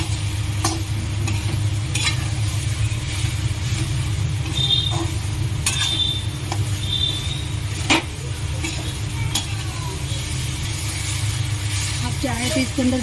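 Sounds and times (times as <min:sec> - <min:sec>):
steady low rumble: 0:00.0 - 0:13.0
spoon scraping metal pan: 0:00.6 - 0:02.3, 0:03.8 - 0:09.5.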